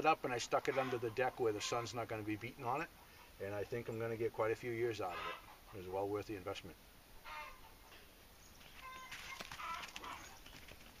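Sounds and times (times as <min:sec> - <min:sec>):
chickens clucking faintly: 0:00.0 - 0:11.0.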